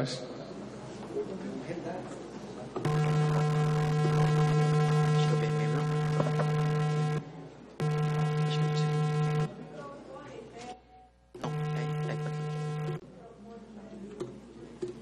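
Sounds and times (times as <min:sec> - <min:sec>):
electrical hum: 0:02.8 - 0:09.5, 0:10.7 - 0:13.0.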